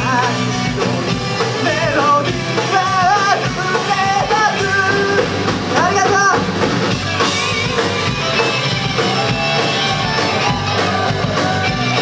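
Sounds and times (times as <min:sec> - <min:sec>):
person singing: 0:00.0 - 0:06.4
live rock band playing: 0:00.0 - 0:12.0.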